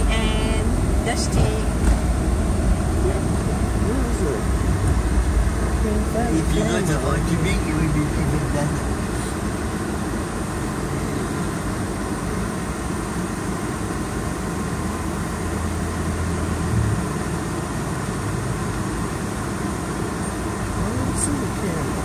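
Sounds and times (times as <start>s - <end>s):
traffic noise: 0.0s - 22.0s
low rumble: 16.3s - 17.6s.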